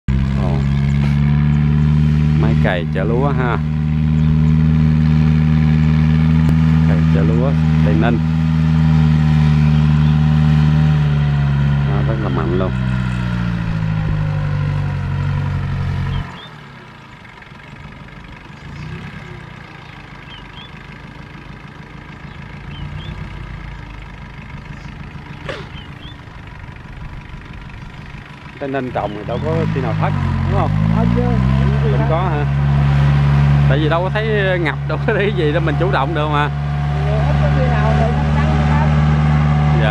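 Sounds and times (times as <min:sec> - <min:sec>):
tractor engine running: 0:00.0 - 0:39.9.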